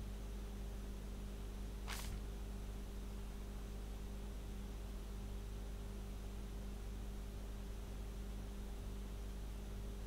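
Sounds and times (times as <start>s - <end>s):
steady low hum: 0.0s - 10.0s
faint hiss: 1.7s - 2.5s.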